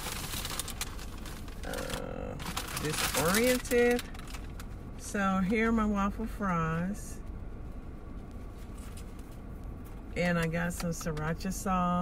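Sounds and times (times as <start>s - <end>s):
food packaging crinkling: 0.0s - 4.7s
woman saying uh: 1.6s - 4.0s, 10.2s - 12.0s.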